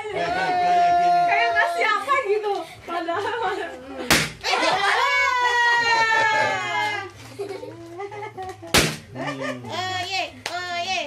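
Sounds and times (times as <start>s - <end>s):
children laughing: 3.2s - 9.9s
sharp slap: 4.1s - 4.5s, 8.7s - 9.1s.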